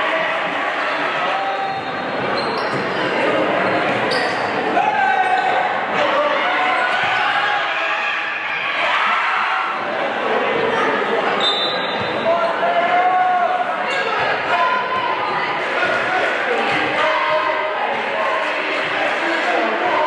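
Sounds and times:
spectators talking and shouting: 0.0s - 20.0s.

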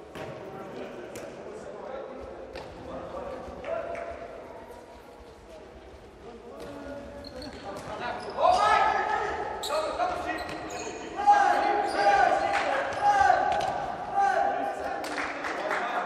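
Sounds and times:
ball kicked and bouncing indoors: 0.0s - 1.4s
players shouting in echoing hall: 7.8s - 16.0s.

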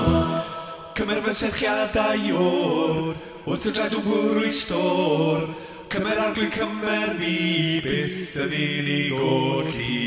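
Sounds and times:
musical accompaniment: 0.0s - 1.0s
voices singing a worship song: 0.0s - 10.0s.

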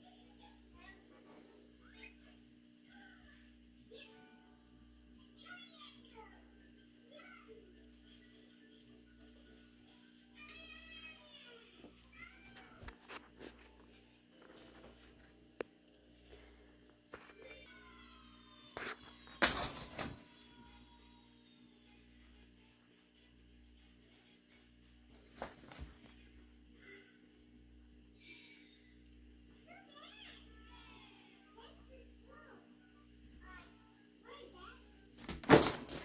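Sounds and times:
faint room hum: 0.0s - 36.0s.

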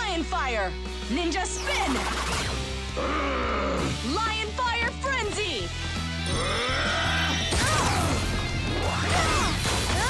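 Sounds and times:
dramatic action music: 0.0s - 10.0s.

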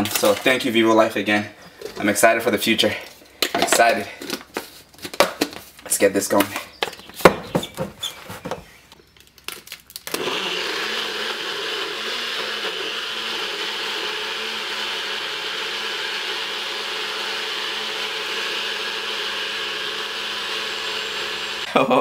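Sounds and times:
blender motor running: 10.0s - 21.7s.

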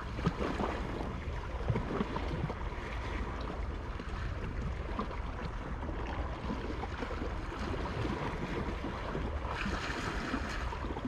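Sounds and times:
sea waves lapping on rocks: 0.0s - 11.0s
water splashes: 0.0s - 11.0s.

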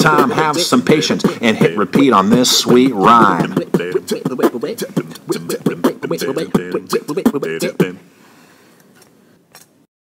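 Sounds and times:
faint background hiss: 0.0s - 9.9s.

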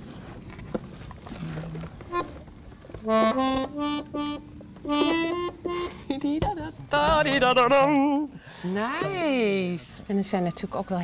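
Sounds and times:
button accordion notes: 2.1s - 2.4s, 3.0s - 6.4s.

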